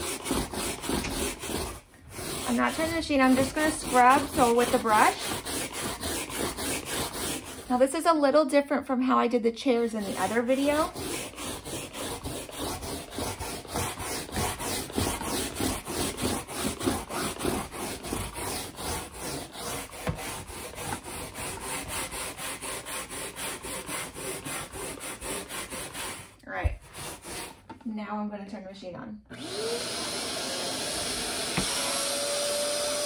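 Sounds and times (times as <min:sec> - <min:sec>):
bristle brush scrubbing wet fabric: 0:00.0 - 0:08.1, 0:09.7 - 0:27.7.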